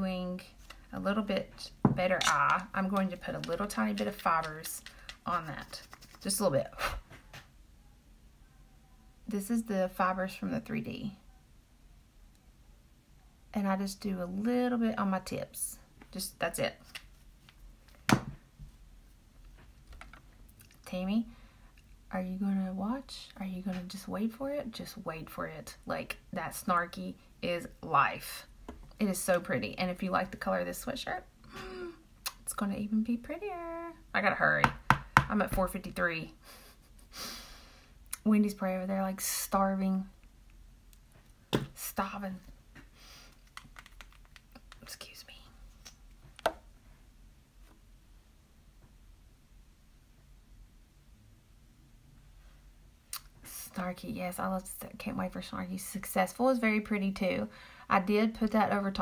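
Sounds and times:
makeup item tapping: 0:41.5 - 0:41.8.

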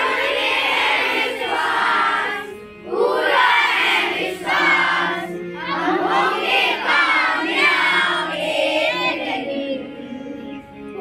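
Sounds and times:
children singing: 0:00.0 - 0:10.6.

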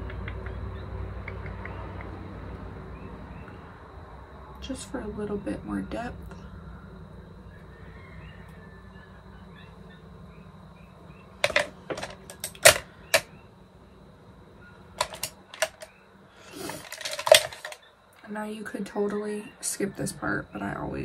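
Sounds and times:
faint steady hum: 0:00.0 - 0:21.0
makeup compacts clicking and knocking: 0:11.4 - 0:13.3, 0:15.0 - 0:15.9, 0:16.7 - 0:17.8.

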